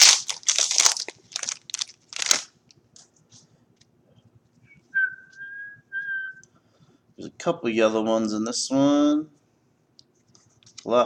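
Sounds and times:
wrapper tearing and crinkling: 0:00.0 - 0:02.5
person whistling: 0:04.6 - 0:06.5.

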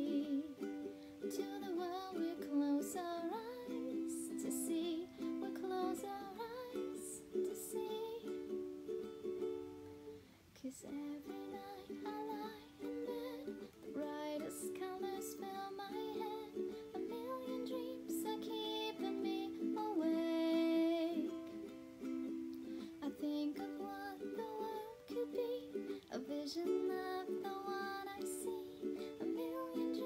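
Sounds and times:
ukulele strumming chords: 0:00.0 - 0:30.0.

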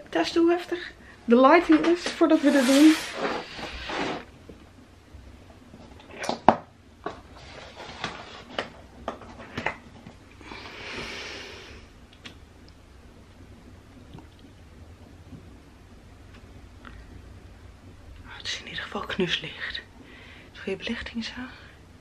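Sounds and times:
soft rustle: 0:01.8 - 0:04.3.

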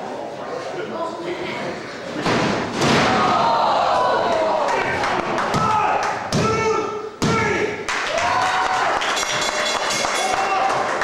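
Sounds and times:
thuds on wrestling mat: 0:02.2 - 0:03.4
voices shouting: 0:03.0 - 0:09.0.

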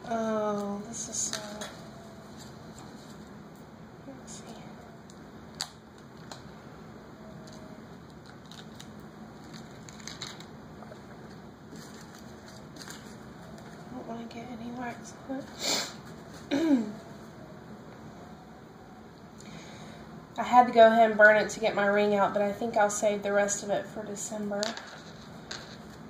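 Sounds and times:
foil packet crinkling: 0:07.4 - 0:13.9.

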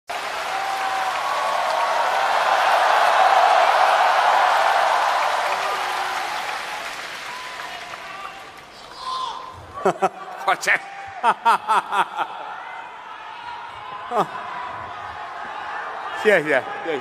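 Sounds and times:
large crowd applauding: 0:00.1 - 0:09.0.

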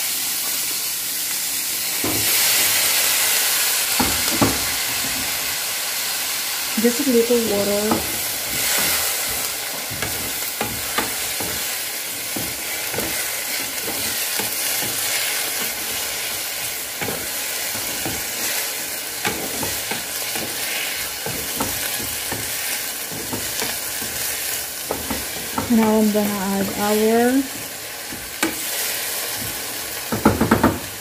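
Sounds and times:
vegetables sizzling in a frying pan: 0:00.0 - 0:31.0
wooden spatula scraping a pan: 0:07.5 - 0:29.7.

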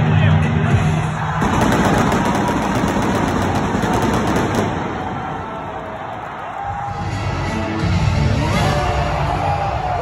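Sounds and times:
arena music: 0:00.0 - 0:10.0
pyrotechnics crackling: 0:01.4 - 0:06.4.

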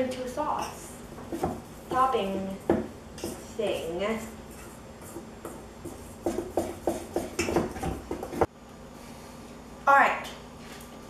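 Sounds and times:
whisk clinking against metal bowl: 0:01.9 - 0:08.4.

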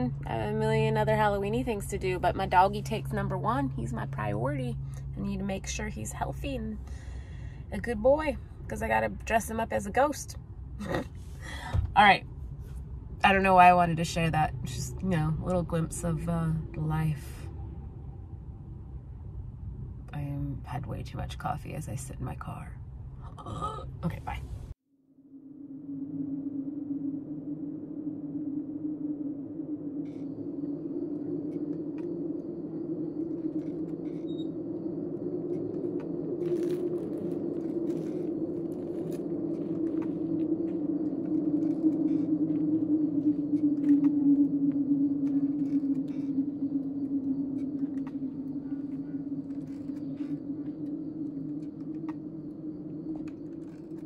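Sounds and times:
low droning hum: 0:00.0 - 0:54.0.

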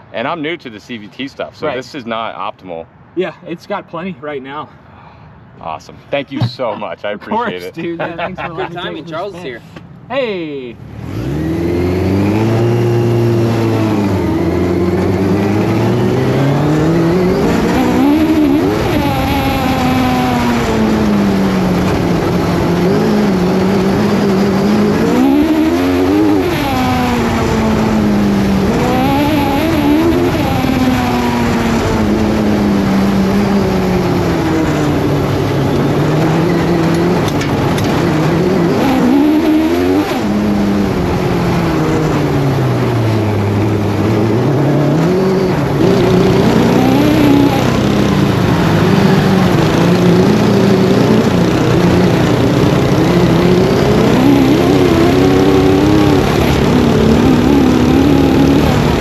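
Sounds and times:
kart engine revving: 0:10.8 - 0:59.0.

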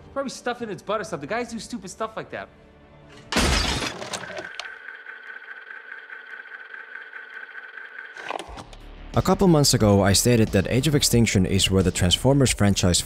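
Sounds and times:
figure smashing with shattering debris: 0:03.3 - 0:04.2.

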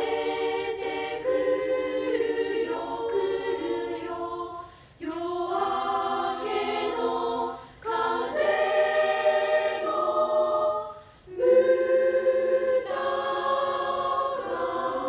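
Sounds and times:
girls' choir singing: 0:00.0 - 0:15.0.

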